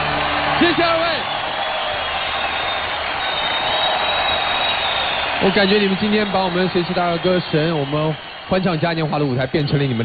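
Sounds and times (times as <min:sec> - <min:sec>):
audience applauding: 0:00.0 - 0:10.0.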